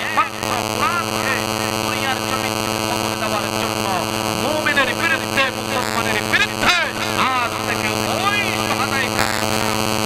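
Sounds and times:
man's amplified voice: 0.0 - 9.9
electrical hum: 0.0 - 10.0.

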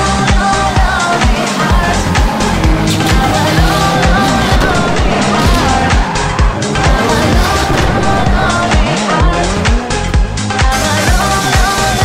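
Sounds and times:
loud music with drum beat: 0.0 - 12.0
rally car engine running hard: 0.0 - 12.0
tyres skidding: 0.0 - 12.0.

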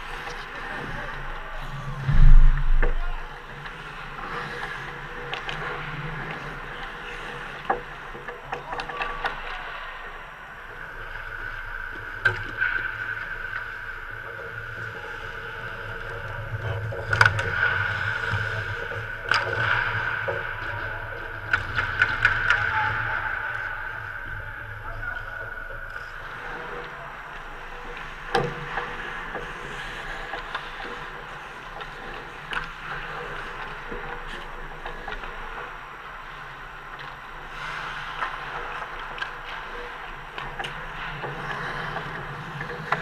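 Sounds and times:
sticks and puck clacking: 0.0 - 10.2, 12.0 - 43.0.

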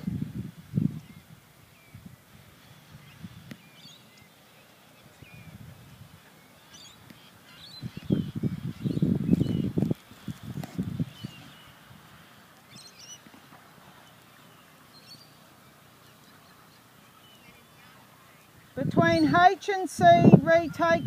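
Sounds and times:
wind rumble on microphone: 0.0 - 3.8, 5.0 - 6.3, 7.7 - 12.2, 18.6 - 21.0
small birds chirping: 1.0 - 19.5.

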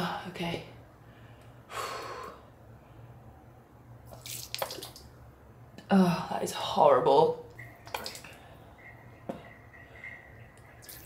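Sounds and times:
liquid dripping into sink: 4.1 - 5.1, 7.5 - 11.0.

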